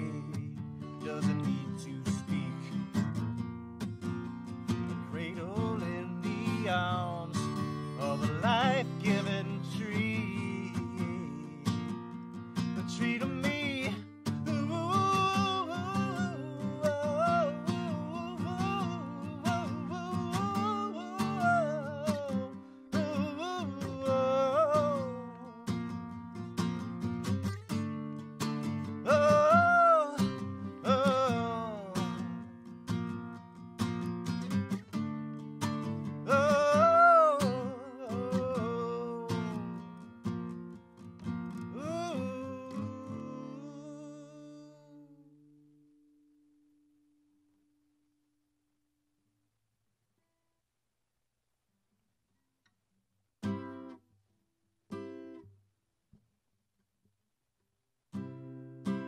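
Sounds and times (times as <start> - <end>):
man singing: 0.0 - 3.2, 4.9 - 12.0, 12.7 - 25.9, 28.8 - 32.4, 36.0 - 40.0, 41.5 - 45.2
acoustic guitar strummed: 0.0 - 47.2, 53.4 - 54.0, 54.9 - 55.5, 58.1 - 59.0.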